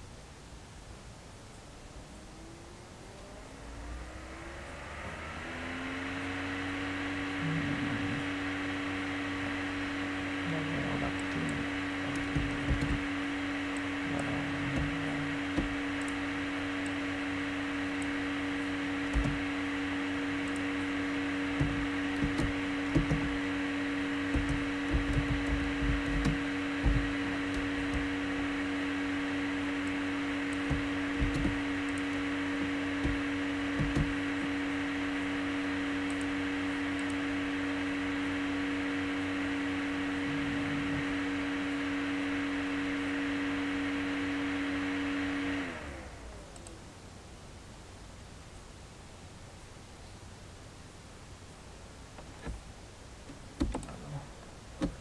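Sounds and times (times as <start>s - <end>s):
electric motor hum spinning down: 1.7s - 46.9s
keyboard clicks and knocks: 12.1s - 13.1s, 19.1s - 19.4s, 21.6s - 23.4s, 24.3s - 28.1s, 30.5s - 31.6s, 33.8s - 34.2s, 53.6s - 53.9s.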